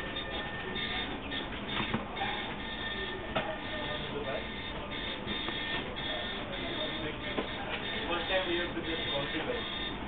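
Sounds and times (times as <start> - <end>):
faint music: 0.0 - 10.0
steady background noise: 0.0 - 10.0.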